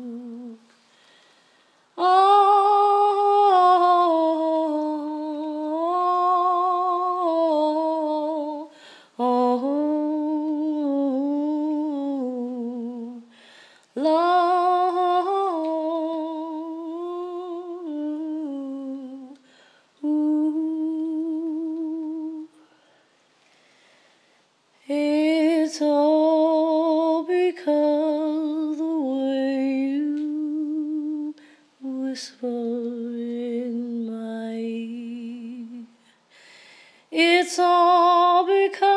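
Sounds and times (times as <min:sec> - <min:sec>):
woman breathing: 0:00.7 - 0:01.9, 0:08.7 - 0:09.2, 0:13.3 - 0:14.0, 0:19.4 - 0:20.0, 0:22.6 - 0:24.6, 0:36.0 - 0:37.1.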